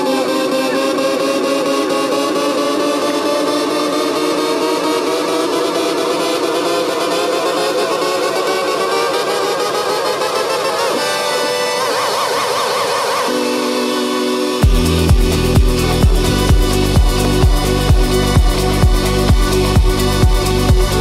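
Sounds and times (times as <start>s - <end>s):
fast ticking percussion loop: 0.0s - 13.6s, 14.5s - 21.0s
synthesizer chords gliding upward: 0.0s - 21.0s.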